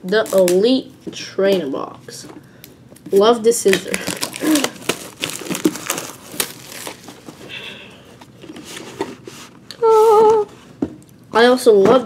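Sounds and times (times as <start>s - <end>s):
plastic wrap crinkling and tearing: 3.0s - 7.5s.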